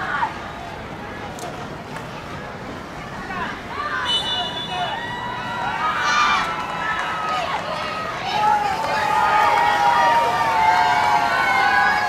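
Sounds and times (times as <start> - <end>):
children shouting: 4.7 - 12.0.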